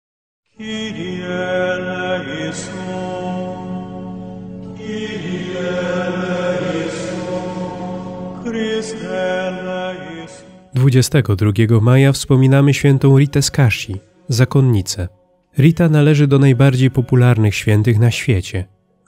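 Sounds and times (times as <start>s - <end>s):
slow sung chant: 0.5s - 10.8s.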